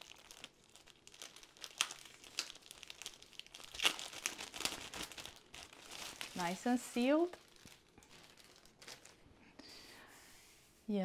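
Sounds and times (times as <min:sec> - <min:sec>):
plastic bag crinkling: 0:00.0 - 0:09.3.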